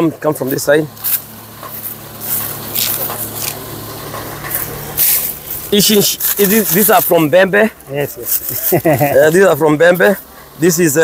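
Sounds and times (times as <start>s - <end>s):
engine humming: 0.0s - 11.0s
dry husks and straw rustling: 0.9s - 10.3s.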